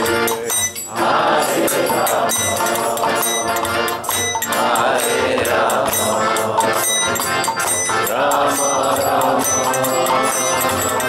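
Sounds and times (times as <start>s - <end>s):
hand cymbals jingling: 0.0s - 11.0s
harmonium: 0.0s - 11.0s
voices chanting: 0.0s - 11.0s.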